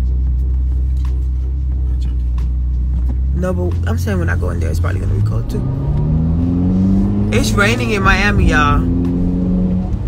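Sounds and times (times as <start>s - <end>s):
car engine rumbling from inside: 0.0s - 10.0s.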